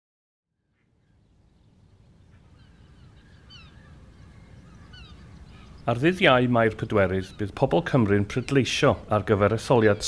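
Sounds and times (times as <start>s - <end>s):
bird chirps: 0.6s - 10.0s.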